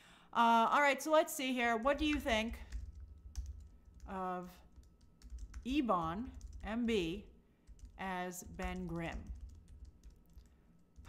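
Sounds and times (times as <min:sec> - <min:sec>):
faint keyboard typing: 0:01.9 - 0:11.0.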